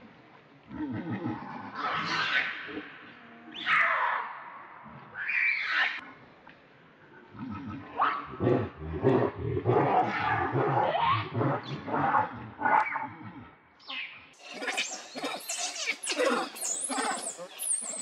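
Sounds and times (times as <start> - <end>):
baby monkey screaming: 14.4 - 18.0.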